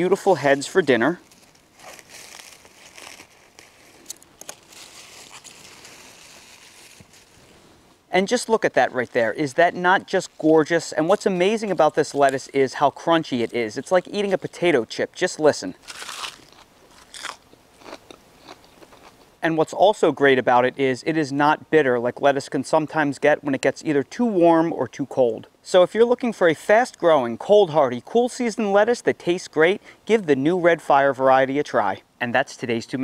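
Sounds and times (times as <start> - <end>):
lettuce leaves rustling: 0.0 - 18.6.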